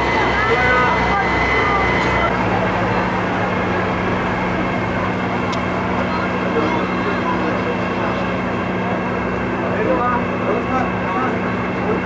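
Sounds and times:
chatter of voices: 0.0s - 12.0s
low engine hum: 0.0s - 12.0s.

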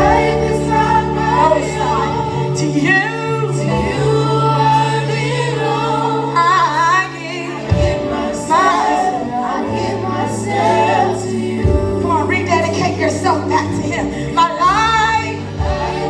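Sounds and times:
group singing worship song: 0.0s - 16.0s
sustained keyboard chords: 0.0s - 16.0s.

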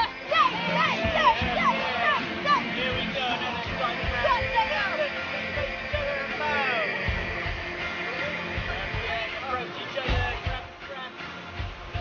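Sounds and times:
children calling out: 0.0s - 6.9s.

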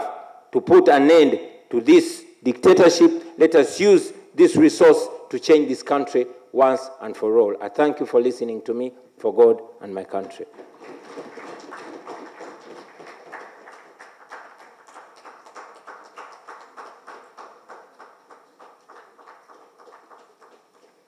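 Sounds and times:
audience applauding: 10.5s - 21.0s.

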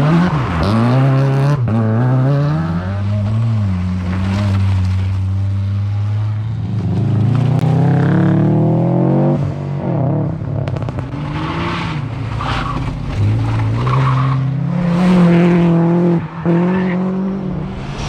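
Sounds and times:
rally car engines revving: 0.0s - 18.0s.

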